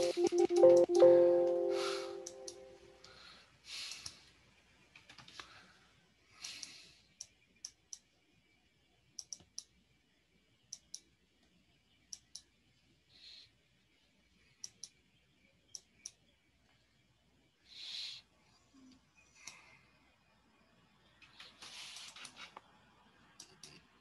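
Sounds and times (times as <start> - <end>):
faint sharp clicks: 3.8 - 4.2, 6.4 - 8.1, 9.2 - 9.8, 10.7 - 11.1.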